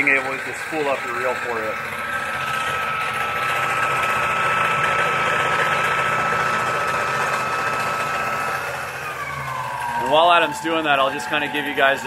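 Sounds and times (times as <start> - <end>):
line spooling machine motor whine: 0.0 - 12.0.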